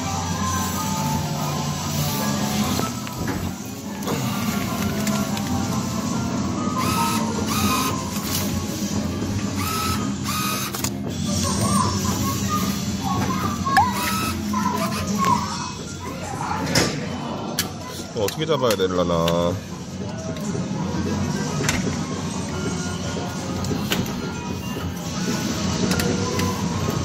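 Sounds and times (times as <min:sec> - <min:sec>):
music playing: 0:00.0 - 0:27.0
banknote acceptor motor running: 0:06.8 - 0:08.1, 0:09.6 - 0:10.8.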